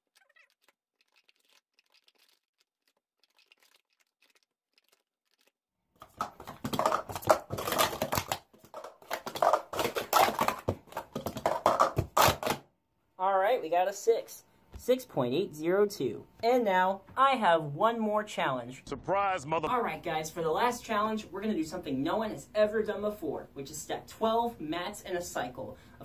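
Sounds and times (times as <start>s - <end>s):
plastic cups clacking: 6.0s - 12.6s.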